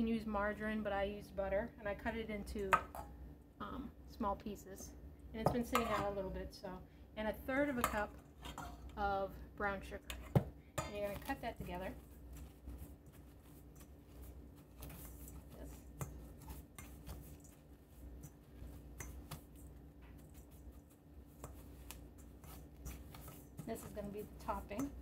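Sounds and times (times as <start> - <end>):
metal blades scraping a bowl: 21.4 - 25.0.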